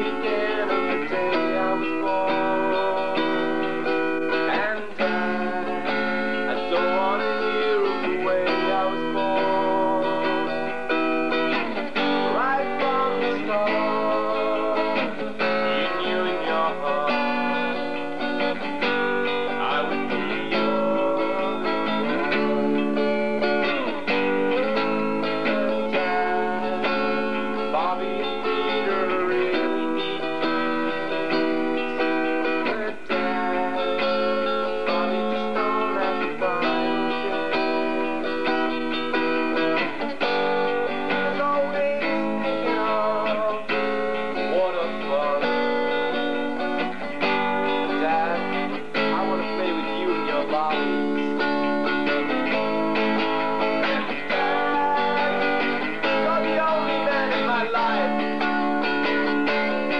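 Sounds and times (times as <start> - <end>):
guitar chords: 0.0 - 59.9.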